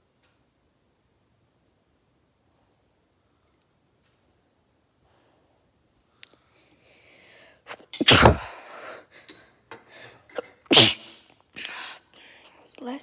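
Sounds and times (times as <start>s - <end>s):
person sneezing: 7.7s - 8.9s, 10.4s - 11.9s.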